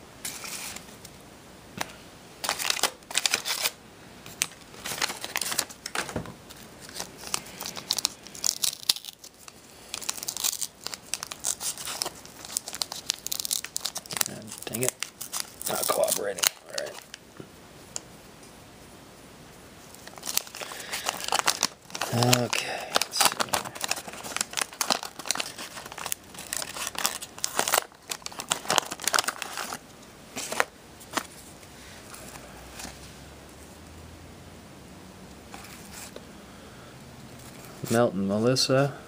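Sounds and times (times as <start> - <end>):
wrapper tearing: 2.4 - 3.8, 4.4 - 17.2, 20.0 - 29.8
wax paper wrapper crinkling: 2.4 - 17.2, 19.9 - 31.5.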